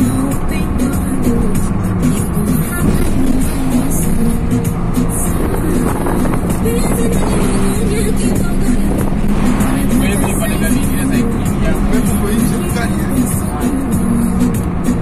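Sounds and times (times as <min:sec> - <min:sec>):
car engine and road noise: 0:00.0 - 0:15.0
music with singing from car stereo: 0:00.0 - 0:15.0.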